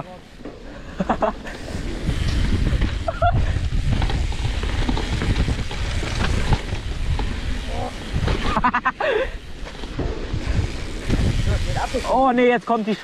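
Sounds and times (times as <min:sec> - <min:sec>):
bike rattling: 0:00.0 - 0:13.0
tyres rumbling on dirt: 0:00.0 - 0:13.0
wind buffeting microphone: 0:00.3 - 0:12.3.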